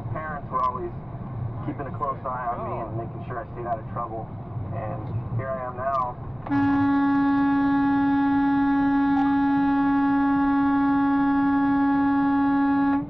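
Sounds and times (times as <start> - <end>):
truck horn blast: 6.4 - 13.0.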